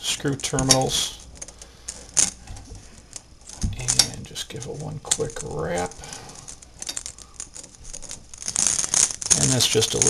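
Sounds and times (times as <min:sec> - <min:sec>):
small metallic rattles: 0:00.4 - 0:10.0.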